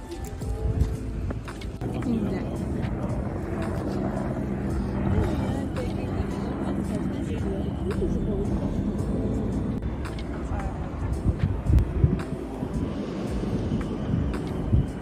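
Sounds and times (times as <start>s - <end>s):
people chattering outdoors: 0.0s - 14.6s
background music: 0.0s - 15.0s
low rumble: 0.0s - 15.0s.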